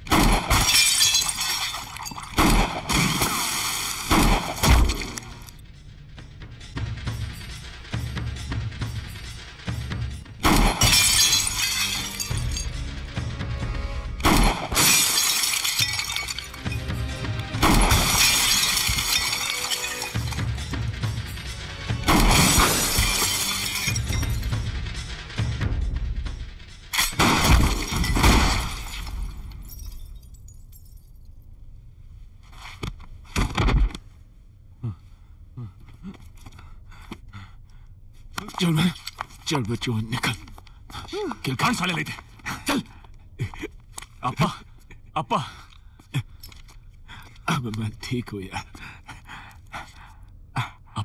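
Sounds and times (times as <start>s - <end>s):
glass shattering: 0.1s - 5.6s, 10.4s - 12.8s, 14.2s - 17.0s, 17.6s - 24.6s, 26.9s - 31.3s
background music: 0.1s - 30.2s.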